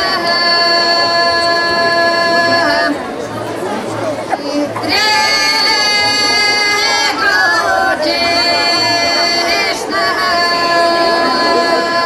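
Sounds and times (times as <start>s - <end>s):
murmuring voices: 0.0s - 12.0s
women's choir singing unaccompanied: 0.0s - 12.0s.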